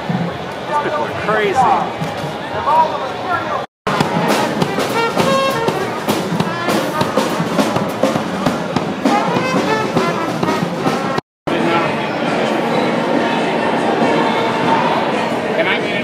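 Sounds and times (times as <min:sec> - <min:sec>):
crowd chatter: 0:00.0 - 0:16.0
drum and cymbal hits: 0:03.9 - 0:11.2
small jazz band playing: 0:03.9 - 0:11.2.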